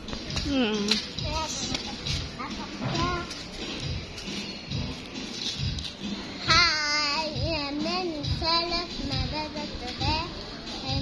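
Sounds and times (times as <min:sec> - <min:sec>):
steady low beat: 0:00.0 - 0:11.0
girl singing in high voice: 0:06.4 - 0:11.0.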